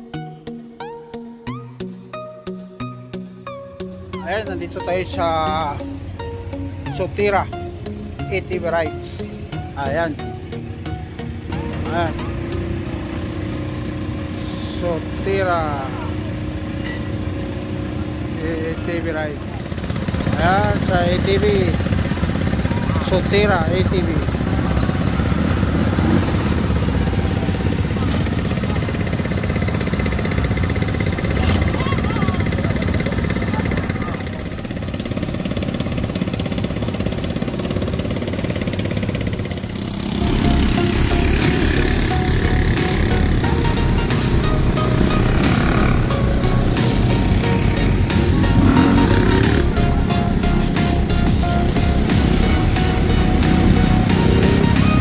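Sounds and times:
background music: 0.0 - 16.7, 17.4 - 55.0
quad bike engines: 3.9 - 55.0
voices: 11.5 - 38.4.

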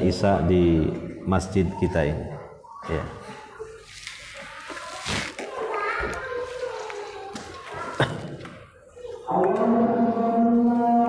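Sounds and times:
man singing call to prayer: 9.3 - 11.0.

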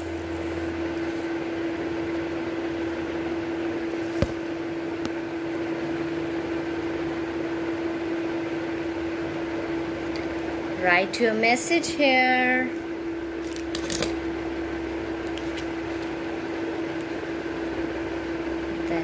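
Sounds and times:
steady machine hum: 0.0 - 19.0.

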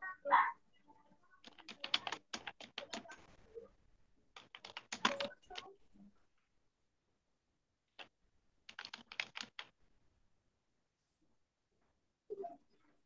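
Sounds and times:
computer keyboard typing: 1.4 - 3.2, 4.4 - 5.7, 8.0 - 9.8.

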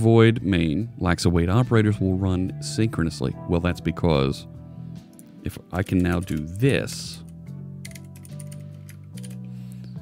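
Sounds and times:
quiet background music: 0.0 - 10.0
keyboard keys clicking: 5.8 - 9.5.

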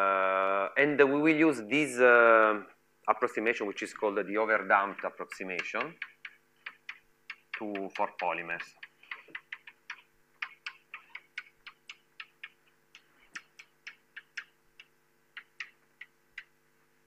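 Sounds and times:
chalk tapping on a blackboard: 4.4 - 16.6.

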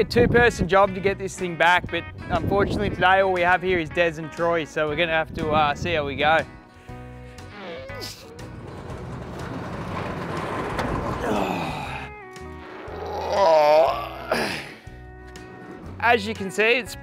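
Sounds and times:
background music: 0.0 - 17.0
man groaning with effort: 7.5 - 8.3, 11.2 - 12.2, 12.9 - 14.8
metal roof rumbling on bearings: 8.0 - 13.2.

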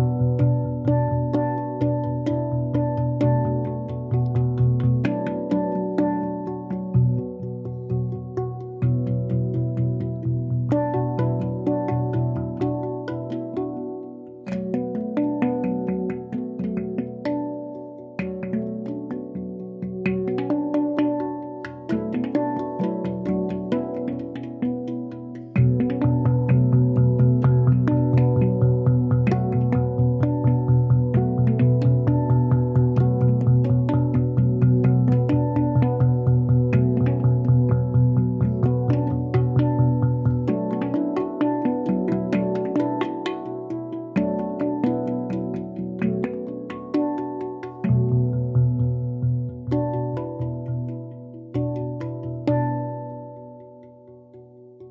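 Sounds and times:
handpan melody: 0.0 - 54.9.

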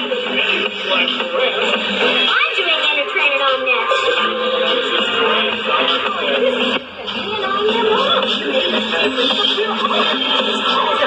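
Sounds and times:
background music: 0.0 - 11.0
voices talking: 0.0 - 11.0.

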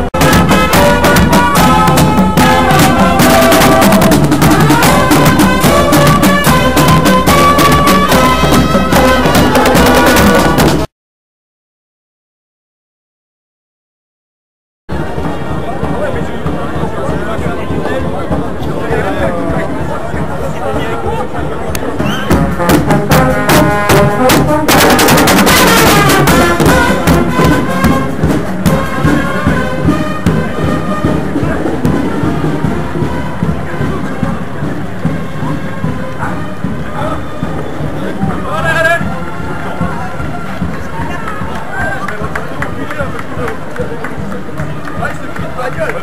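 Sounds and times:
crowd chatter: 0.0 - 10.9, 14.9 - 46.0
music over a loudspeaker: 0.2 - 10.8
runners moving off: 14.9 - 46.0
crowd cheering and clapping: 39.1 - 46.0.

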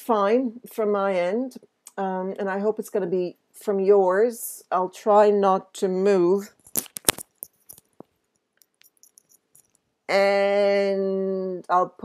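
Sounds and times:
microphone handling clicks: 6.6 - 9.2.

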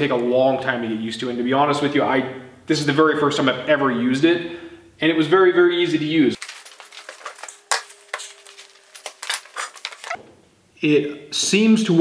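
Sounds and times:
gloves and pouch rustling: 6.4 - 10.2
tools clinking on wooden bench: 7.1 - 10.2.

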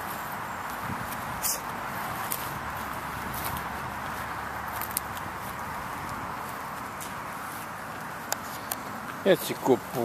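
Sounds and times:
light footsteps on pavement: 0.0 - 10.0
steady background hiss: 0.0 - 10.0.

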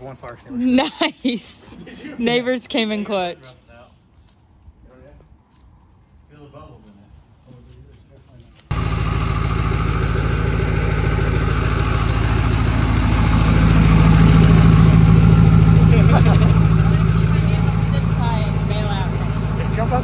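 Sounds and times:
diesel engine idling: 8.7 - 20.0.

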